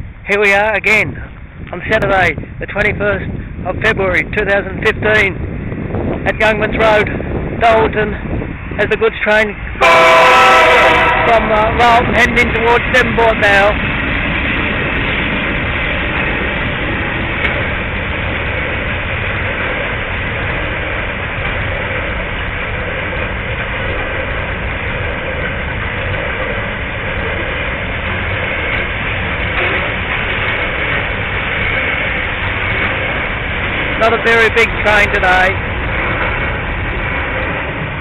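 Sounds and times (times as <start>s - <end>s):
freight train rumbling past: 0.0s - 38.0s.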